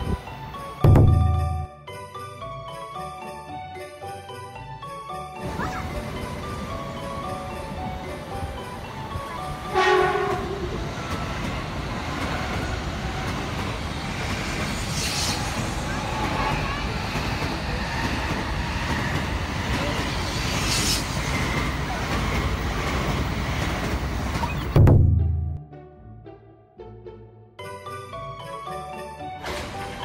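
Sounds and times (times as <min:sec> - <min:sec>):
train rushing past: 0:05.4 - 0:25.6
train horn blast: 0:09.6 - 0:10.8.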